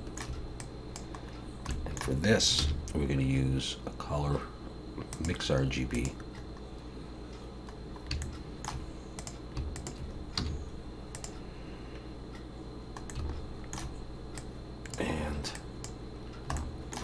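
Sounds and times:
faint steady hum: 0:00.0 - 0:17.0
mouse and keyboard clicks: 0:08.1 - 0:11.4, 0:13.0 - 0:15.1.

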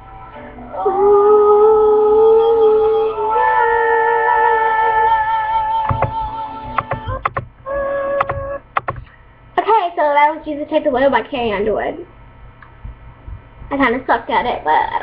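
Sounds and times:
sharp clicks: 0:06.8 - 0:07.5, 0:08.2 - 0:09.2.

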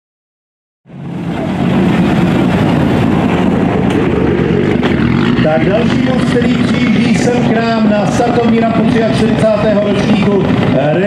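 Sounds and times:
car engine running: 0:00.9 - 0:11.0.

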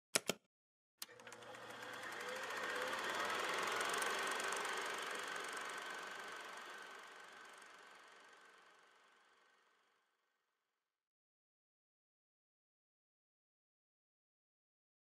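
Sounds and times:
noisy buzz with fine ticking: 0:01.0 - 0:09.8.

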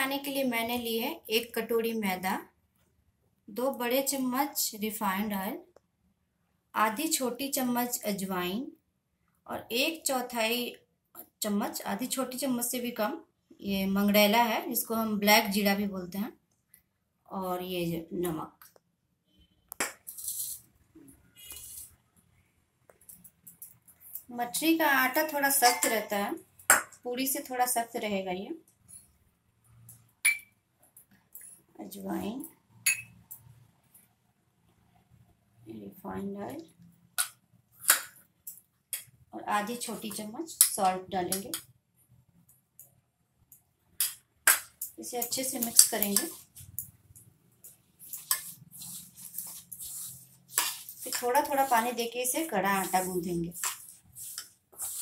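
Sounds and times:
metal bowl scraping on counter: 0:48.0 - 0:55.0.

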